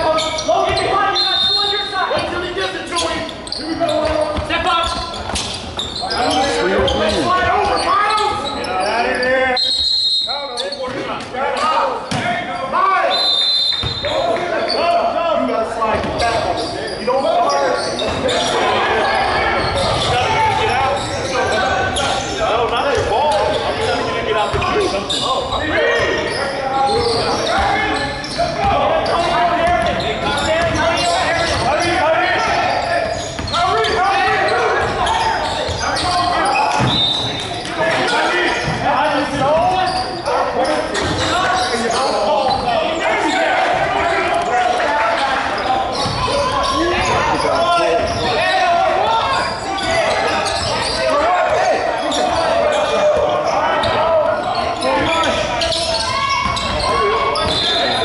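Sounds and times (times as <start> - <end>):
voices echoing in a gymnasium: 0.0 - 58.0.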